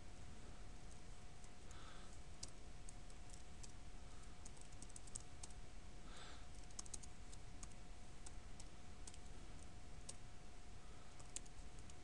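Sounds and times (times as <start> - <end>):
faint steady hum and hiss: 0.0 - 12.0.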